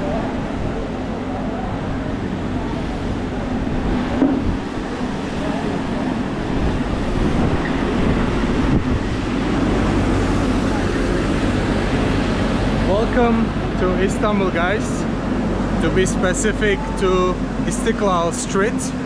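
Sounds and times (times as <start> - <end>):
crowd chatter: 0.0 - 18.3
motor vehicle engine hum: 0.0 - 19.0.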